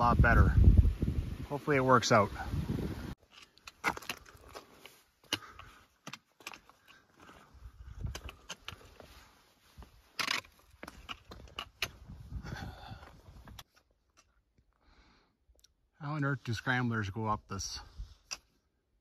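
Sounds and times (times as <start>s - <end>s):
boots crunching over rock: 3.2s - 12.2s.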